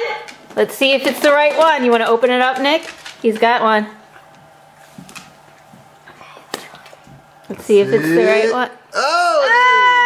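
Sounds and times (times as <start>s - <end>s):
dog claws clicking on wood floor: 0.2s - 5.9s.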